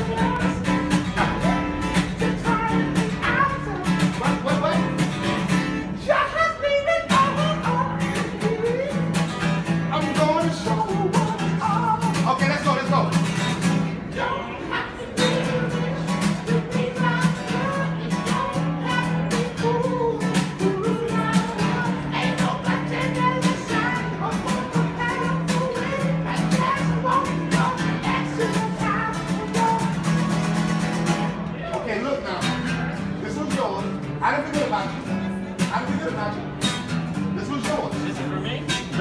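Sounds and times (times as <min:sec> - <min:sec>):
guitar strumming chords: 0:00.0 - 0:06.1, 0:15.1 - 0:31.6.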